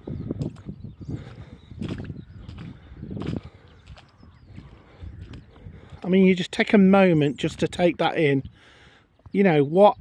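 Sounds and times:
footsteps on wet concrete: 0:00.3 - 0:06.4.

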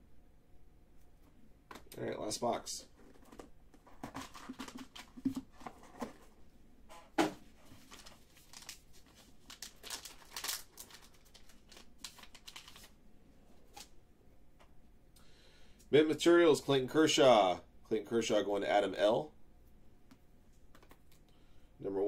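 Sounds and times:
cards rustling: 0:03.0 - 0:06.3, 0:07.7 - 0:13.0
foil wrapper crinkling: 0:07.7 - 0:13.0.

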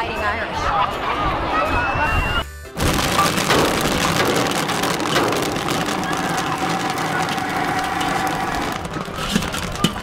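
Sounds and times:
popcorn popping in a kettle: 0:02.8 - 0:10.0.

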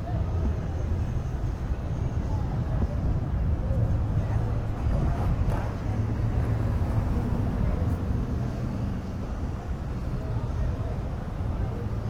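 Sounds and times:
faint chatter of pedestrians: 0:00.0 - 0:12.0.

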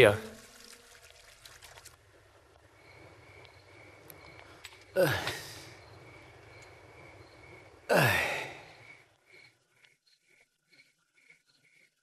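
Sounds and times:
water trickling from garden hose: 0:00.0 - 0:02.1.

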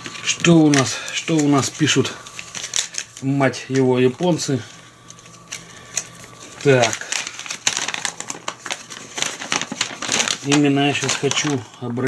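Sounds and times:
paper leaflet rustling: 0:00.0 - 0:11.8.

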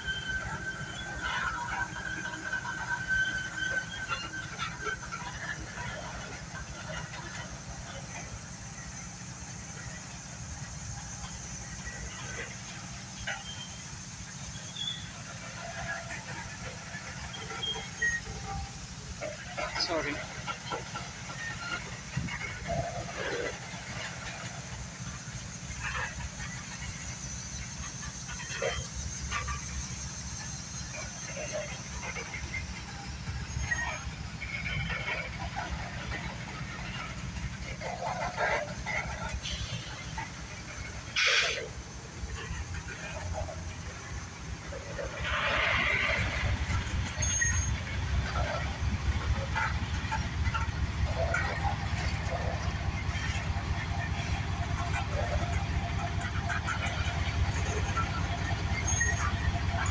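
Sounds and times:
train squeaks and clanks: 0:00.0 - 0:59.9
train wheels rumbling on rail: 0:00.0 - 0:59.9.

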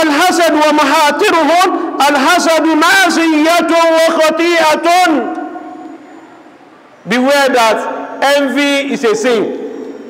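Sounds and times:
hall echo: 0:00.0 - 0:10.0.

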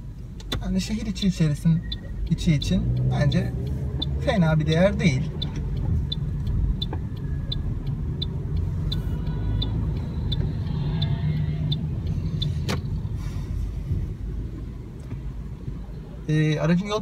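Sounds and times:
car road and engine rumble: 0:00.0 - 0:17.0
turn signal ticking: 0:00.0 - 0:17.0.

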